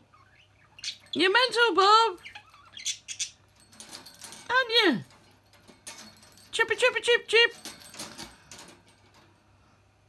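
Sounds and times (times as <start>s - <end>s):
bird rustling: 3.5s - 4.5s.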